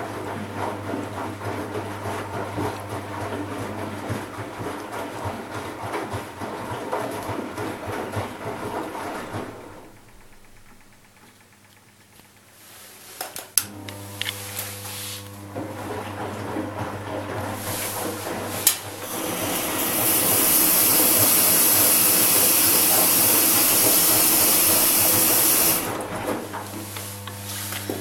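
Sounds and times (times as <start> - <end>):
washing machine drum turning: 0.0 - 12.5, 13.4 - 28.0
washing machine sharp clicks: 7.8 - 12.5, 17.5 - 28.0.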